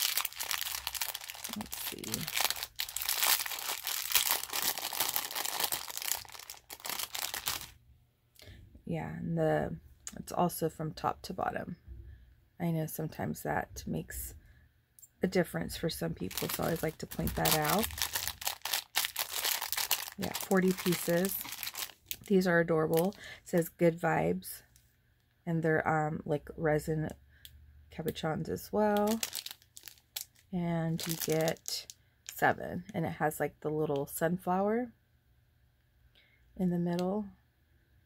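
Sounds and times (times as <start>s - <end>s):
plastic bag crinkling: 0.0s - 7.8s, 16.1s - 23.6s, 29.0s - 31.9s.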